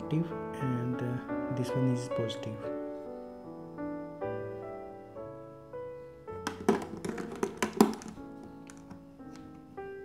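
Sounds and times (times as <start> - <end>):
soft piano music: 0.0 - 10.0.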